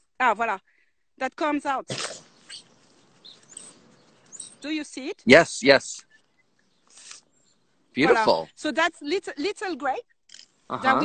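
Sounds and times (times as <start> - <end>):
faint outdoor ambience: 0.0 - 11.0
high bird chirps: 1.9 - 5.3, 5.9 - 8.3.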